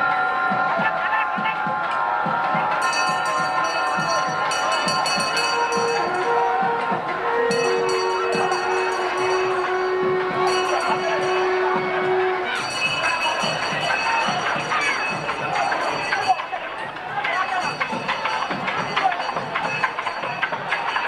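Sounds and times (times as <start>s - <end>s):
drum strokes: 0.0s - 21.0s
large crowd noise: 0.0s - 21.0s
bells ringing: 2.7s - 21.0s.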